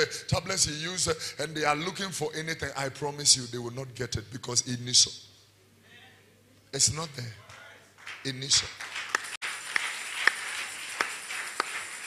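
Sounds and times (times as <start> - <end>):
congregation applauding: 7.4 - 12.0.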